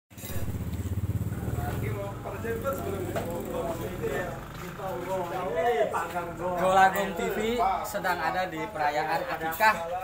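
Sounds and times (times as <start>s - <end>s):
small engine droning: 0.2s - 6.6s
faint voices: 1.2s - 10.0s.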